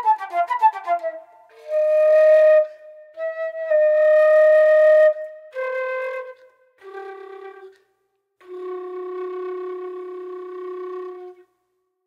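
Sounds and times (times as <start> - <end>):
flute long low note: 0.0 - 7.8, 8.4 - 11.5.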